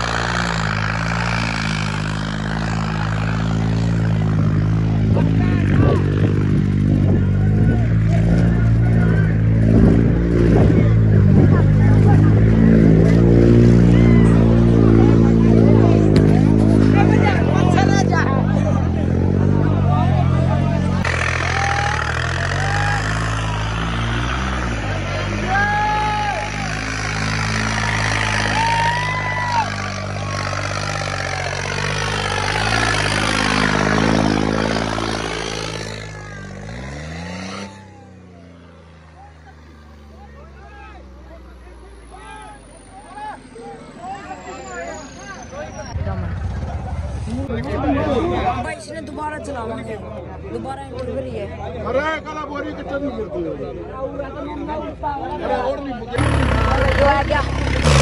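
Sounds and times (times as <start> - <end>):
tractor diesel engine under load: 0.0 - 49.5, 53.7 - 58.0
crowd shouting: 19.5 - 34.6.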